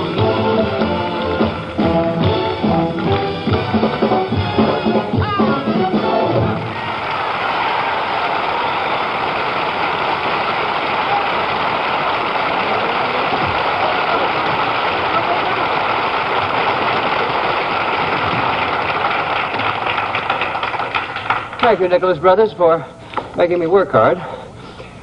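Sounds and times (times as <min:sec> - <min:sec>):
audience applauding: 0:06.6 - 0:22.0.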